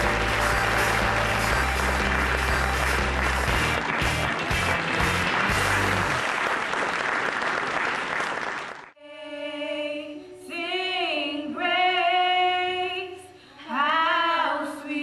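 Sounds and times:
background music: 0.0 - 6.2
audience applauding: 0.0 - 9.0.

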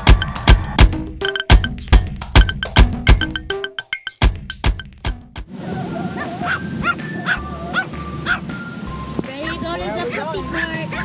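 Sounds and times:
background music: 0.0 - 5.5, 6.5 - 11.0
small dog yipping and barking: 5.7 - 8.6, 9.5 - 11.0.

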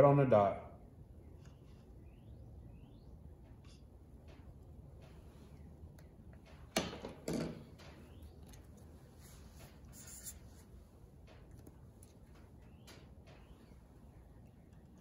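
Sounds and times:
marker squeaking on paper: 9.9 - 10.7.

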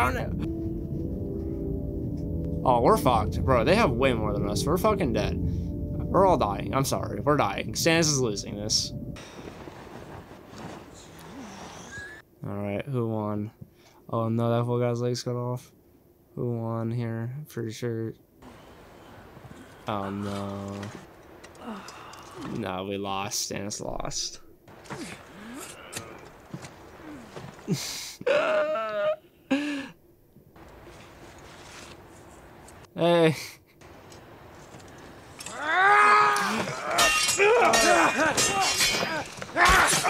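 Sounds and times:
low rising and falling tone: 0.0 - 9.2
person wailing: 21.6 - 22.5, 25.0 - 26.3, 27.0 - 27.4, 28.2 - 29.9, 35.4 - 40.0.

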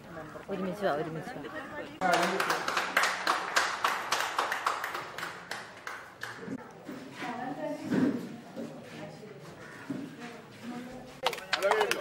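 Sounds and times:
people clapping: 2.0 - 6.6, 11.2 - 12.0.

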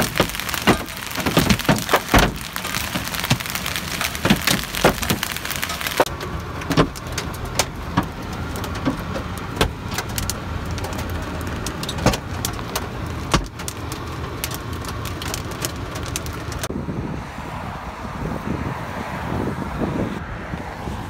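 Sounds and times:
hailstones striking a car: 0.0 - 16.7
car low rumble: 0.0 - 21.0.

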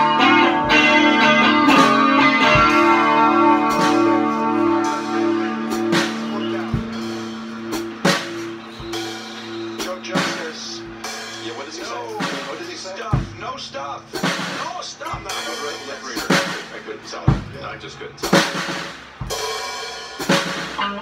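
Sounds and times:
drum and cymbal hits: 0.0 - 21.0
electric guitar chord ringing: 0.0 - 21.0.

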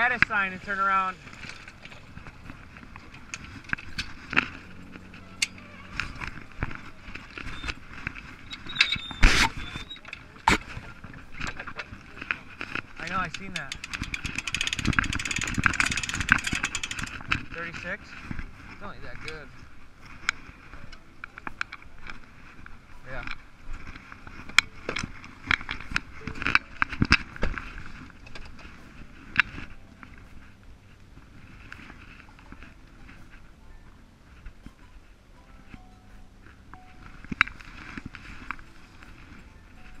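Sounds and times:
metallic clicks of winch: 13.0 - 17.4.

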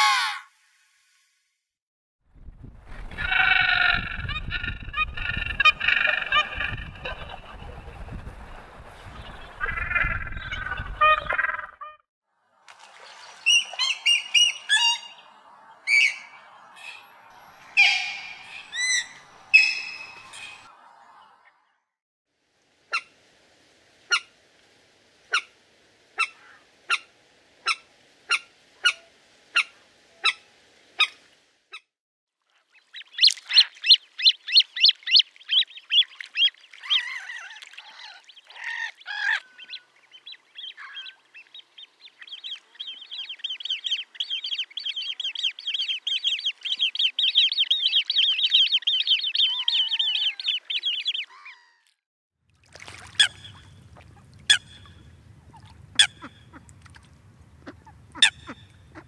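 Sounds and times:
moorhen sharp calls: 13.5 - 15.2, 17.7 - 20.7, 32.9 - 51.7, 54.4 - 56.7, 57.5 - 59.0.

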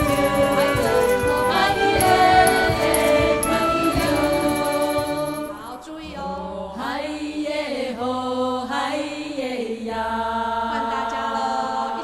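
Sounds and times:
group singing over music: 0.0 - 12.0.

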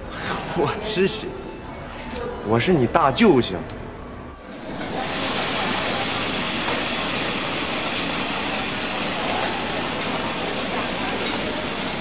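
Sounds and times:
gas burners roaring: 3.6 - 12.0
food sizzling in a wok: 4.5 - 12.0.

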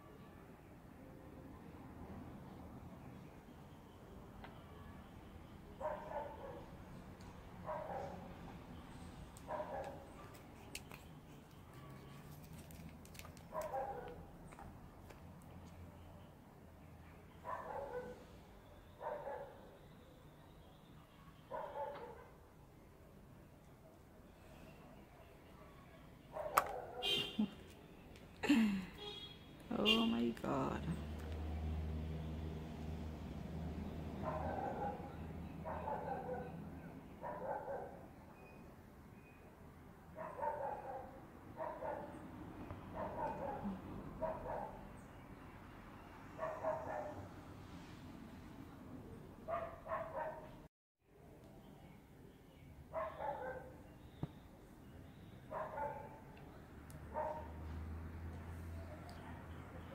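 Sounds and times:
dog barking: 5.8 - 6.7, 7.6 - 8.3, 9.5 - 10.4, 13.5 - 14.2, 17.4 - 18.2, 19.0 - 19.8, 21.5 - 22.4, 25.6 - 27.4, 34.2 - 36.6, 37.2 - 38.0, 40.1 - 42.2, 42.9 - 44.9, 46.3 - 47.3, 49.5 - 50.6, 52.9 - 53.8, 55.5 - 56.3, 57.1 - 57.6.

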